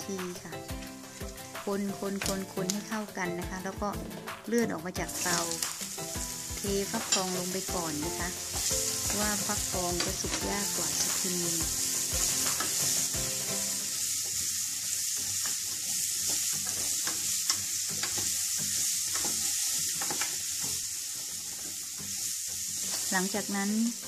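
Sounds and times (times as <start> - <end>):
food sizzling in hot oil: 0.0 - 24.0.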